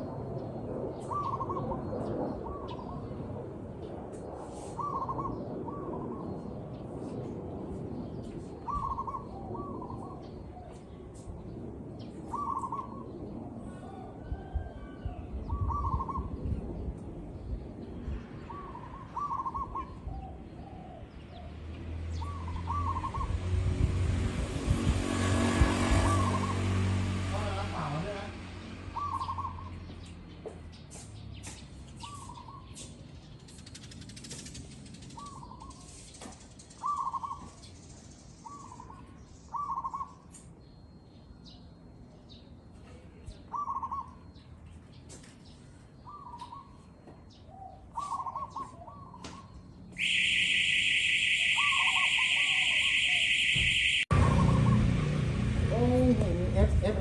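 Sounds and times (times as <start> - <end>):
dove cooing: 1.0 - 3.1, 4.7 - 6.2, 8.7 - 10.7, 12.3 - 13.0, 15.5 - 16.3, 18.5 - 21.1, 29.0 - 29.7, 43.5 - 44.3, 47.6 - 50.2.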